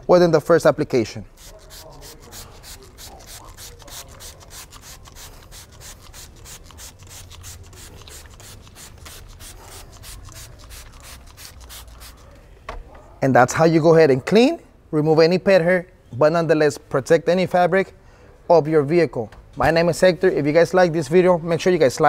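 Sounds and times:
spray bottle hissing sprays: 1.3s - 12.3s.

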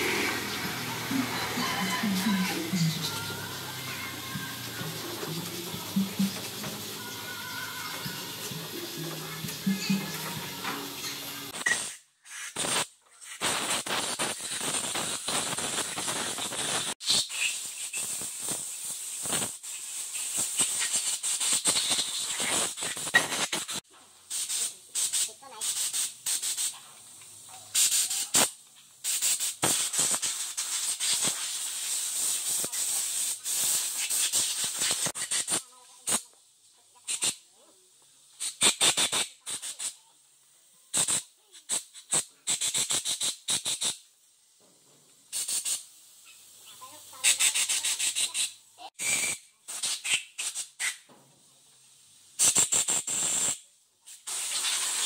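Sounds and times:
air spray gun hissing bursts: 0.0s - 26.8s, 27.7s - 36.2s, 38.4s - 40.0s, 45.3s - 46.2s, 47.1s - 50.9s, 52.4s - 55.0s.

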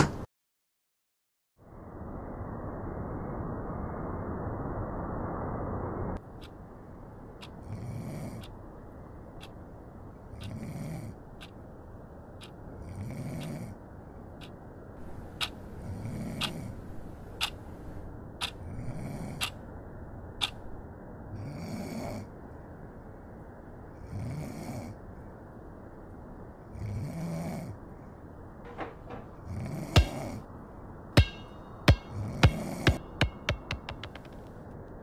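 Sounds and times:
steady low hiss: 1.7s - 35.0s
person snoring: 7.6s - 8.4s, 10.4s - 11.2s.

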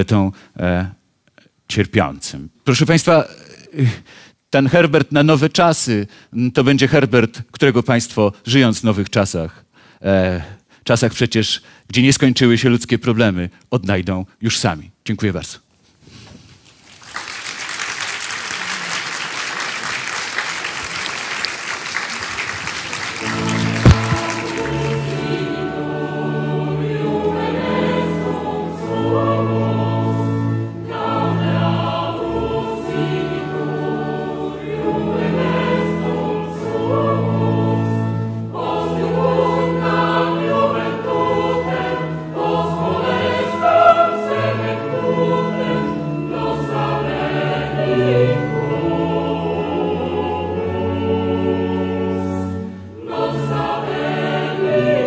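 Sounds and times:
audience applauding: 16.8s - 25.3s
choir singing sustained chords: 22.8s - 55.0s.

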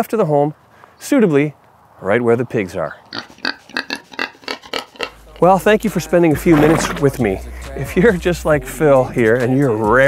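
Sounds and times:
pig grunting: 3.0s - 5.4s, 6.4s - 7.6s.

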